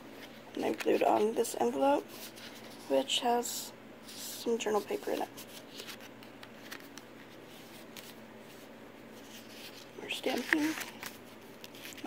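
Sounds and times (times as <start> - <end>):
paper pages being turned: 0.1 - 1.4, 4.0 - 12.0.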